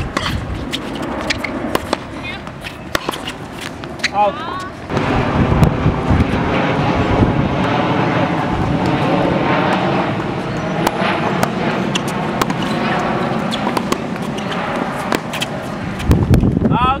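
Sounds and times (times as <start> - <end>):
tennis ball hit with rackets: 0.0 - 4.2, 10.8 - 15.5
tennis ball bouncing on court: 0.0 - 4.6, 10.8 - 15.8
loud outdoor background noise: 0.0 - 17.0.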